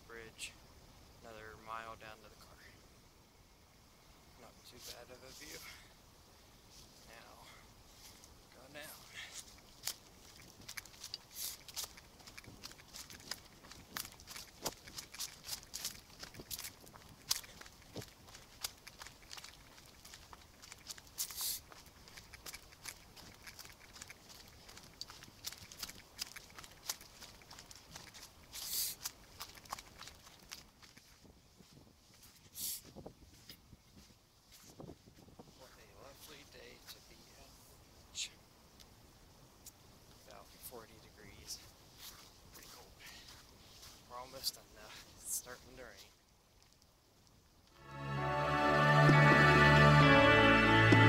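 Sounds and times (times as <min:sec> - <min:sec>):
footsteps through dry leaves: 0:07.8 - 0:32.6, 0:41.5 - 0:46.2.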